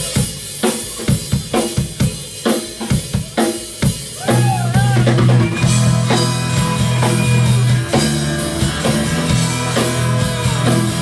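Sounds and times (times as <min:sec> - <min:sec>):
drum kit playing: 0:00.0 - 0:11.0
electric guitars and bass: 0:04.2 - 0:11.0.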